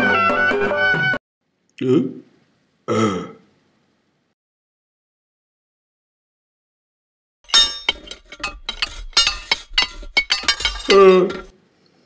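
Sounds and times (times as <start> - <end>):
ringing clinks and clacks: 7.5 - 11.5.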